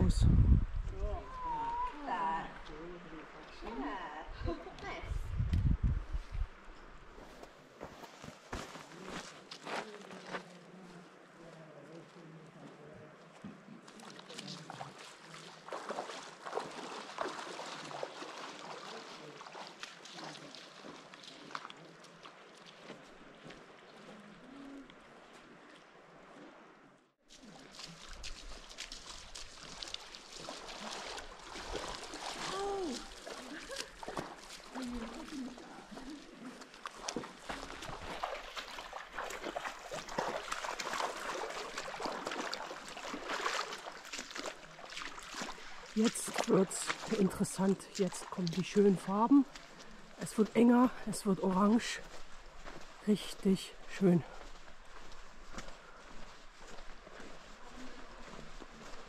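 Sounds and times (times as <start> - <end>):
flowing water rushing: 1.0 - 5.0, 13.3 - 59.0
footsteps splashing through water: 7.2 - 59.0.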